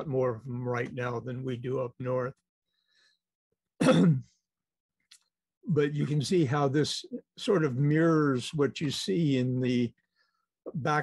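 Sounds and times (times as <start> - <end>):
man clearing his throat: 3.8 - 4.4.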